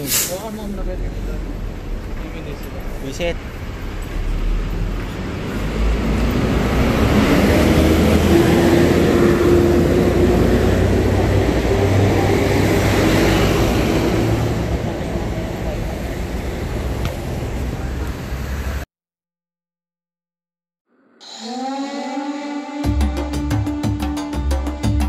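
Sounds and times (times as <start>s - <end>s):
bus engine driving past: 0.0s - 18.8s.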